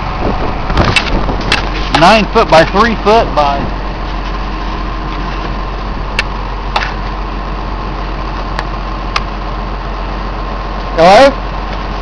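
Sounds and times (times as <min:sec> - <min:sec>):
excavator diesel engine idling: 0:00.0 - 0:12.0.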